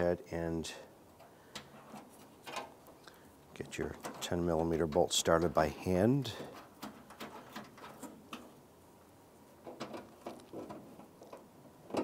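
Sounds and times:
bolt clicking and scraping: 1.2 - 3.0, 6.4 - 8.6.

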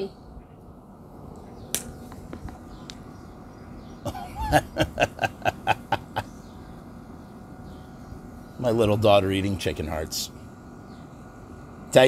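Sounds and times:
pulsing laughter: 4.0 - 6.4.

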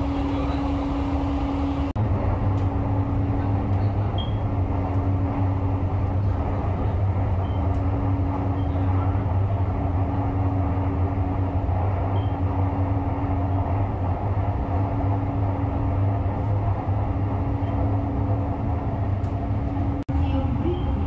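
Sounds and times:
train cabin hum: 0.0 - 21.0.

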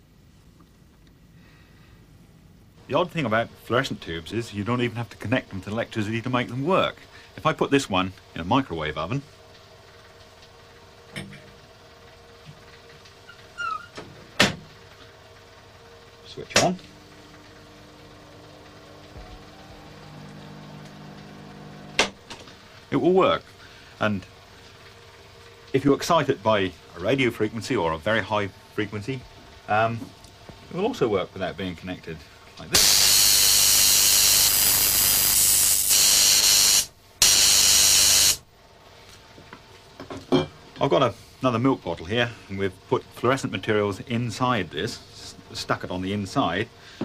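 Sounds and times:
microwave oven humming: 0.0 - 47.0
spark gap hissing: 32.8 - 38.4.

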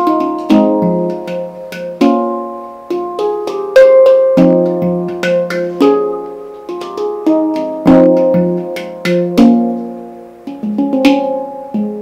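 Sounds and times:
handpan notes: 0.0 - 12.0.

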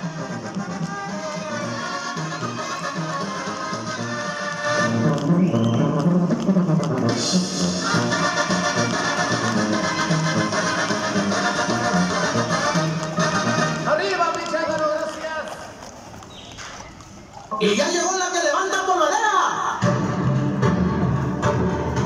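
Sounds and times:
brass band music with bass: 0.0 - 14.0, 19.6 - 22.0.

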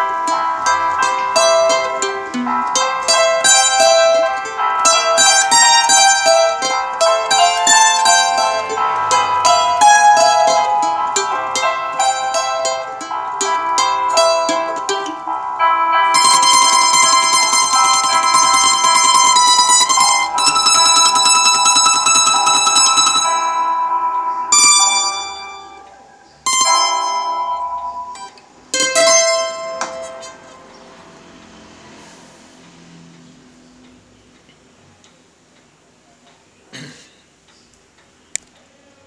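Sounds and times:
acoustic guitar playing: 0.0 - 34.1.

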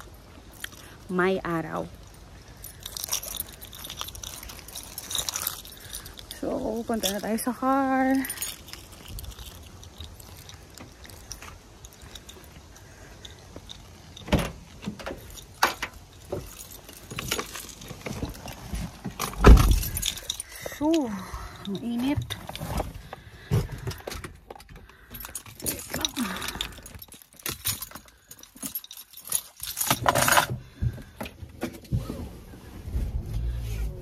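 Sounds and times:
objects clicking and rattling: 2.0 - 31.7
car door unlatching and opening: 19.1 - 20.0.

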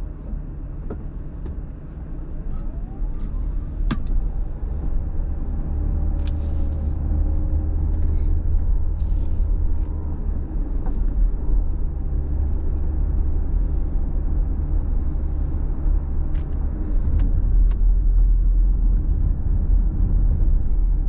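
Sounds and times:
road and engine noise inside car: 0.0 - 21.0.

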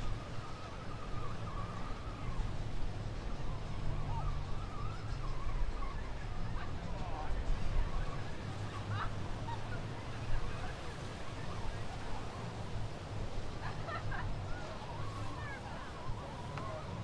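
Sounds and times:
wind: 0.0 - 17.0.

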